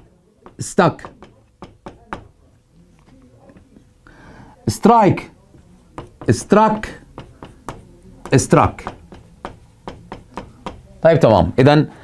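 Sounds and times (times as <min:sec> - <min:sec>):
marker pen writing on whiteboard: 0:00.0 - 0:02.5, 0:04.7 - 0:10.9.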